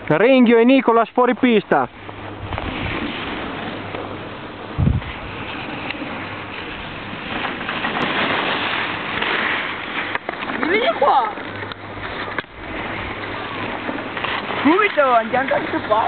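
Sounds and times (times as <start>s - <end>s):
wind on microphone: 2.1s - 8.4s.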